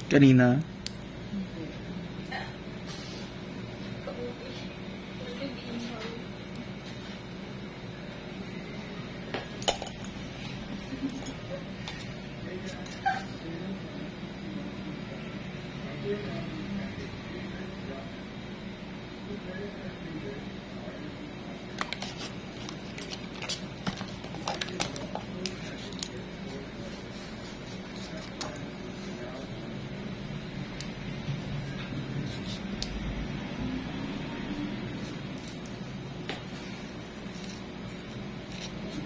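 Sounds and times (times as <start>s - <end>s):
steady background hum: 0.0s - 39.0s.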